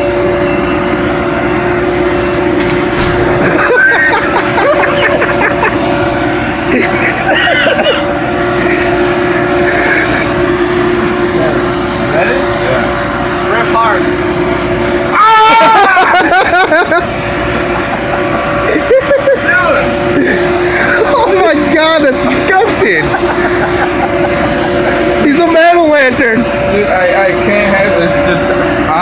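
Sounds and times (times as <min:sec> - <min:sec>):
machine hum: 0:00.0 - 0:29.0
people laughing: 0:03.3 - 0:10.5, 0:15.2 - 0:25.2
people talking: 0:11.3 - 0:14.2, 0:18.1 - 0:29.0
loud wavering vocal cry: 0:15.1 - 0:16.8.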